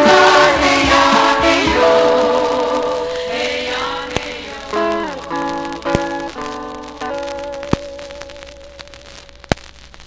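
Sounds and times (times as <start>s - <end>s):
group vocal pop song: 0.0s - 5.4s.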